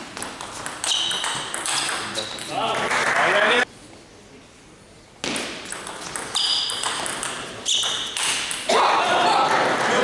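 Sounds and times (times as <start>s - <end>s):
shoe squeaks on floor: 0.8s - 2.5s, 6.3s - 7.0s, 7.6s - 8.4s
table tennis ball clicking: 5.7s - 8.7s.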